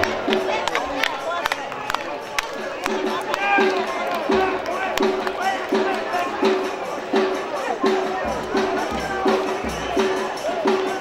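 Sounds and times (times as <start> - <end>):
football crowd shouting: 0.0 - 11.0
music from the stands: 0.0 - 11.0
sharp claps: 0.0 - 11.0.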